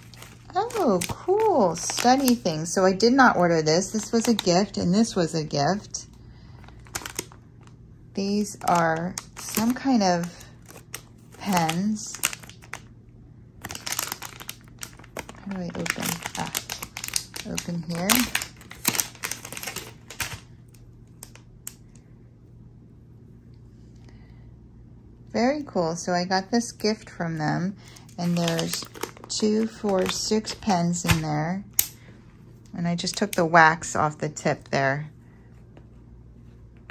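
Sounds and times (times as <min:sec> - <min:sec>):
plastic packaging handling: 0:00.0 - 0:05.2, 0:06.5 - 0:12.9, 0:13.6 - 0:21.4, 0:27.9 - 0:31.4
low steady hum: 0:00.0 - 0:36.9.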